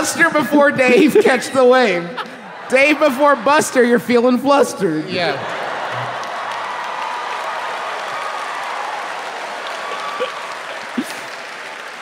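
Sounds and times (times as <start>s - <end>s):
audience applauding: 2.2s - 4.0s, 5.3s - 12.0s.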